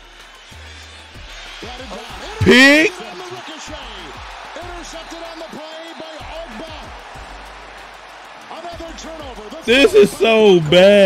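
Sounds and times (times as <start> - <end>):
crowd shouting: 1.7 - 8.6, 9.5 - 11.0
crowd roar: 1.7 - 11.0.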